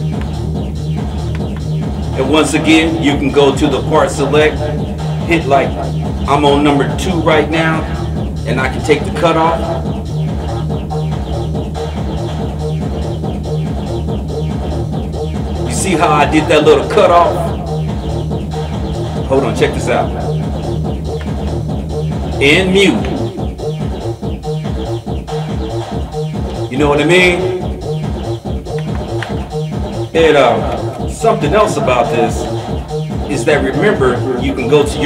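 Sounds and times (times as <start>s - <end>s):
electronic dance drums and bass: 0.0s - 35.0s.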